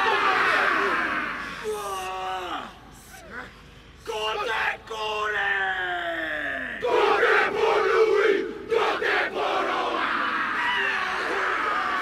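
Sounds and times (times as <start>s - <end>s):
team shouting chant in unison: 0.0s - 1.4s, 6.5s - 12.0s.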